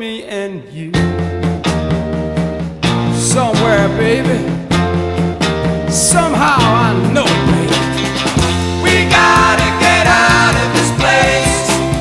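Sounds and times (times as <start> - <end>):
classic rock song: 0.8 - 12.0.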